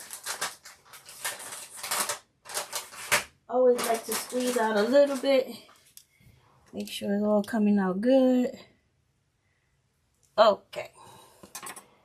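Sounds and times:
plastic piping bag crinkling: 0.0s - 6.0s.

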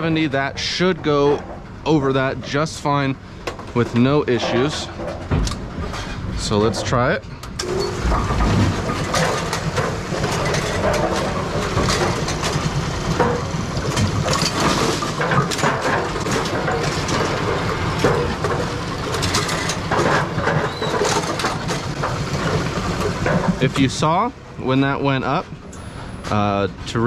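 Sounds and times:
pinsetter mechanical clatter: 0.0s - 26.5s
mechanical knocks and clicks: 3.4s - 5.9s, 7.4s - 23.8s.

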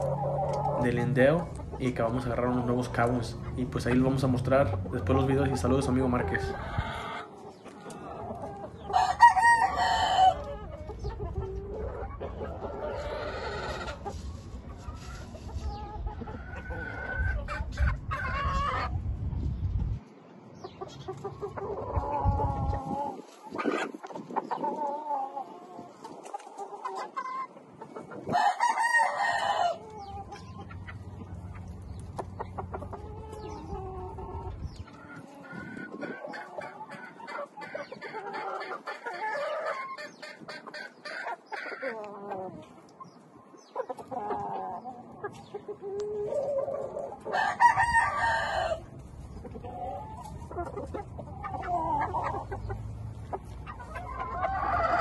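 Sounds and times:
roosters crowing: 0.0s - 19.0s, 21.1s - 42.7s, 44.0s - 55.0s.

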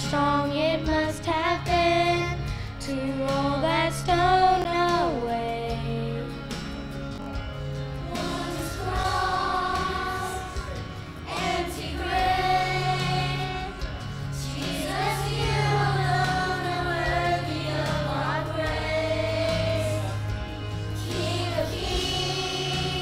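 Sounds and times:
instrumental accompaniment: 3.4s - 23.0s
children's choir singing: 8.0s - 23.0s.

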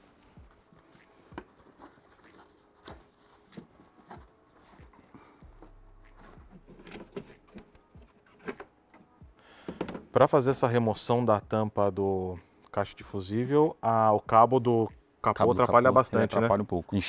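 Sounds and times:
low steady hum: 5.1s - 8.2s.

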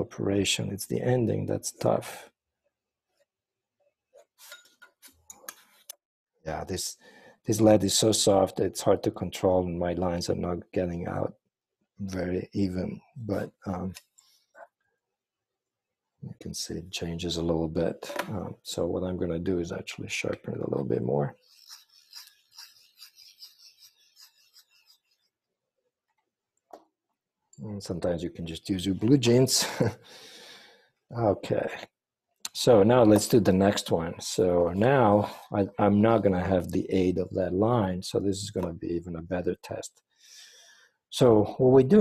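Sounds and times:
pencil lead scratchy grinding: 21.3s - 25.4s.

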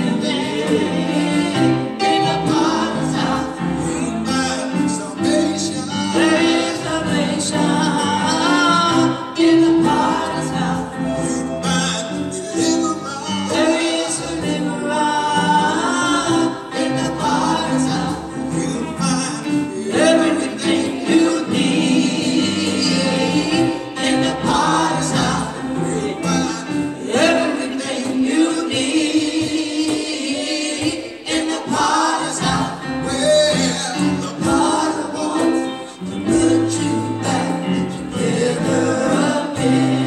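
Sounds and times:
instrumental accompaniment with beat: 0.0s - 40.0s
vocal group singing in harmony: 0.0s - 40.0s.

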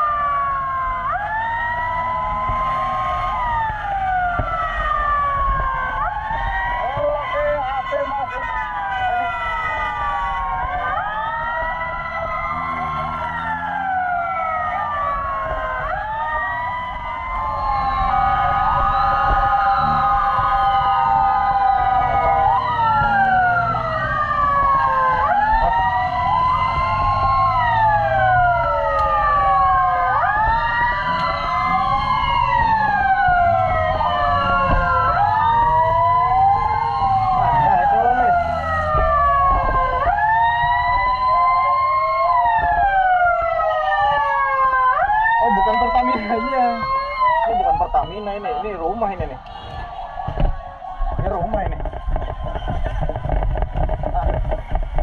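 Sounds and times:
motorcycle engine rumble: 0.0s - 48.1s, 49.2s - 55.0s
emergency sirens wailing: 0.0s - 55.0s
road noise: 0.0s - 55.0s.

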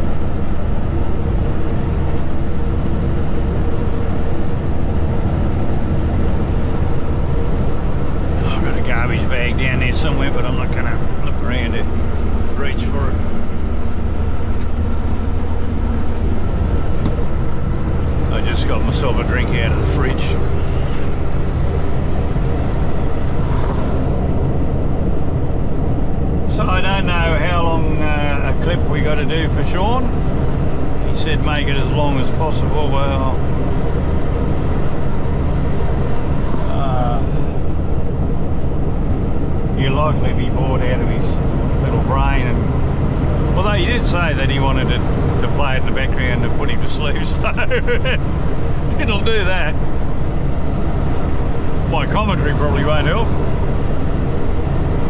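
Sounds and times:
truck engine and road noise: 0.0s - 55.0s.

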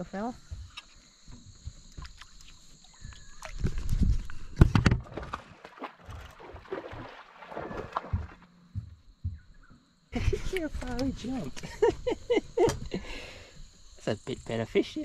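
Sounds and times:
high-pitched insect drone: 0.0s - 4.6s, 8.6s - 15.0s
water sloshing: 0.6s - 9.4s.

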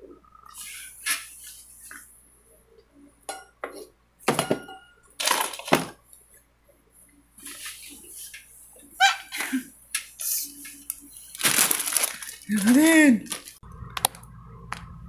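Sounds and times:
objects knocking and clinking: 4.3s - 6.0s
rustling: 10.2s - 13.6s.

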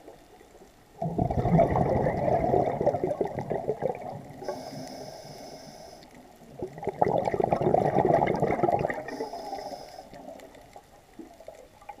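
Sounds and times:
scuba regulator bubbles gurgling: 0.0s - 12.0s
faint high hiss: 4.0s - 6.6s, 8.6s - 11.9s.

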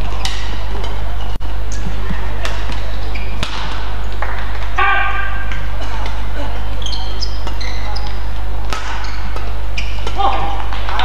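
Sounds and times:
shoes squeaking on floor: 0.0s - 3.7s, 5.9s - 10.4s
racket hitting shuttlecock: 0.1s - 1.0s, 2.4s - 4.8s, 7.4s - 11.0s.

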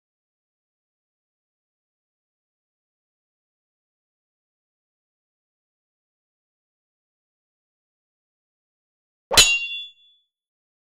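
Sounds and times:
sharp metallic clang: 9.3s - 10.1s.

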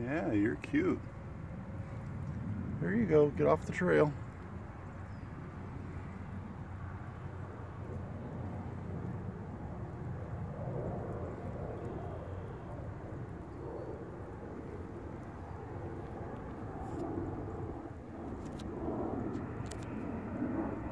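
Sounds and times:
distant engine rumble: 0.0s - 20.9s.

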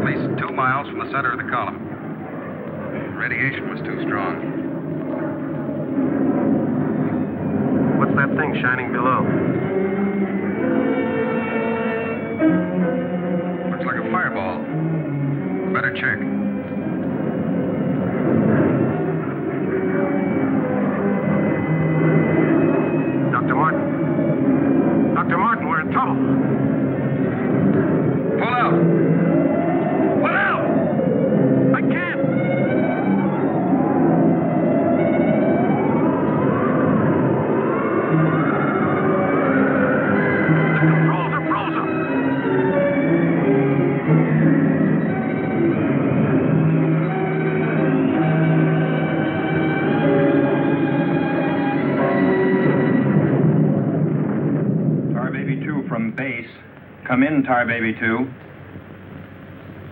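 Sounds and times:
dramatic orchestral music: 0.0s - 55.4s.

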